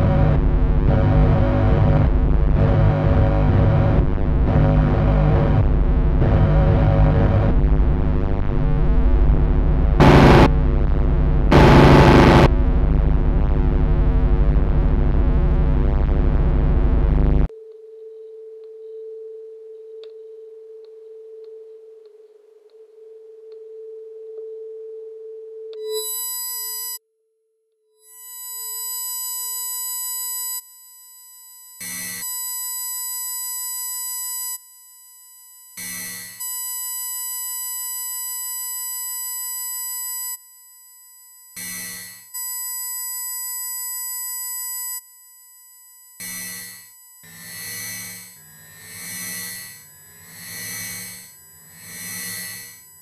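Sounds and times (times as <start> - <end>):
steady low electronic tone: 0.0 - 17.5
high piercing sine tones: 0.0 - 27.0, 28.0 - 53.0
short noisy bursts: 10.0 - 10.5, 11.5 - 12.5.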